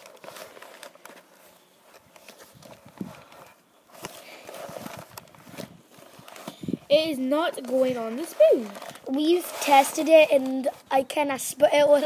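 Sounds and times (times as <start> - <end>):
cardboard box rustling: 0.0 - 10.5.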